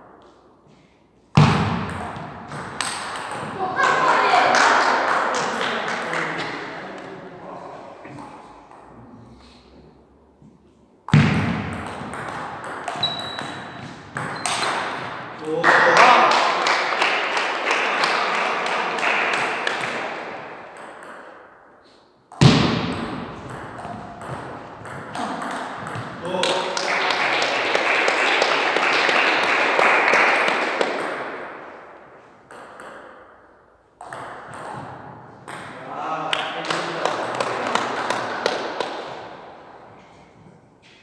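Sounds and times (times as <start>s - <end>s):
voices in a hall: 3.2s - 10.5s, 14.4s - 20.8s, 25.1s - 32.2s, 34.9s - 41.0s.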